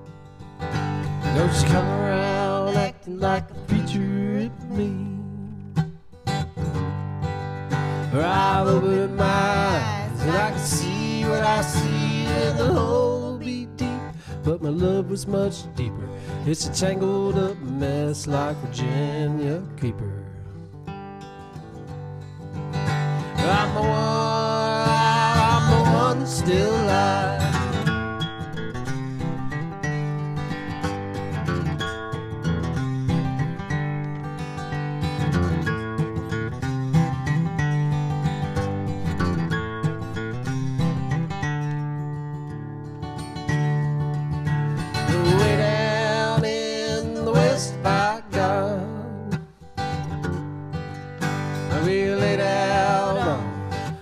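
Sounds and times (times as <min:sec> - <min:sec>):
acoustic guitar strumming: 0:00.0 - 0:54.0
woman singing: 0:01.6 - 0:05.1, 0:08.6 - 0:14.1, 0:23.4 - 0:27.8, 0:45.1 - 0:49.3, 0:51.8 - 0:53.6.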